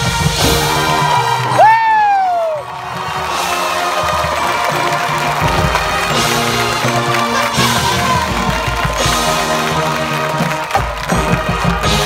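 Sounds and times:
marching band playing: 0.0 - 12.0
person whooping: 1.5 - 2.7.

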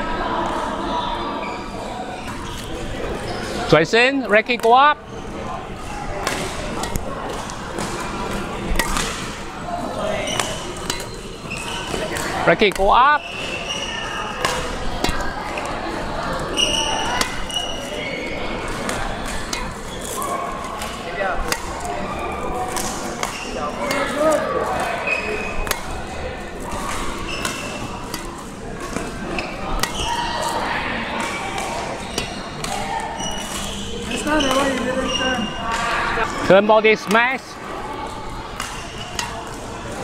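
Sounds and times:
racket hitting shuttlecocks: 6.2 - 34.9, 38.0 - 40.0.

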